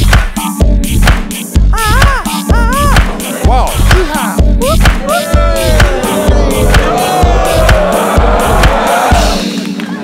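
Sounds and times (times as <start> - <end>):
kick drum: 0.0 - 9.5.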